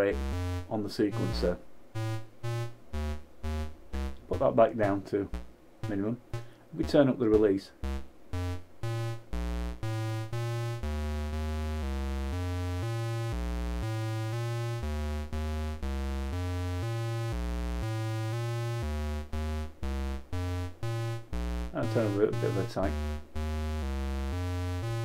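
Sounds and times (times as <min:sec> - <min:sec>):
synth bass-note sequence: 0:00.0 - 0:25.0.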